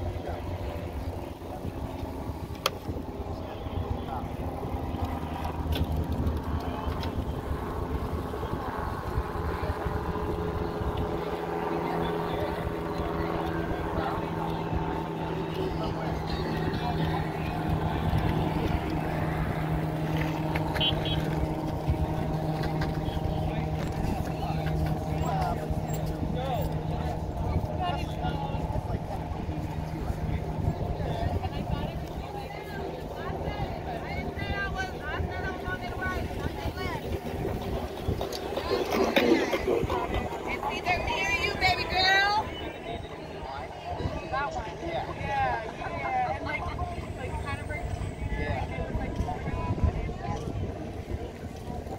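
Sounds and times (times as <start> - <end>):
indistinct voices of people: 0.0 - 51.9.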